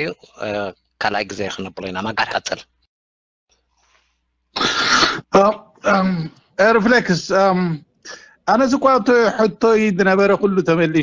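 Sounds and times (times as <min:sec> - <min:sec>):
person clearing throat: 0:04.6 - 0:06.2.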